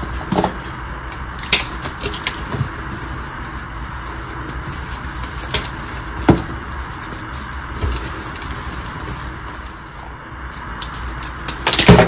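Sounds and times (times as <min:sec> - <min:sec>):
chalk being crushed by hand: 0:00.0 - 0:12.0
sharp cracks of chalk breaking: 0:10.9 - 0:12.0.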